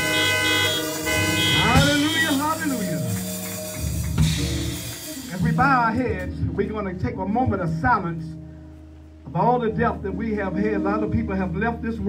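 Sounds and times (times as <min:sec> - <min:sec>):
sustained organ-style keyboard chord: 0:00.0 - 0:12.0.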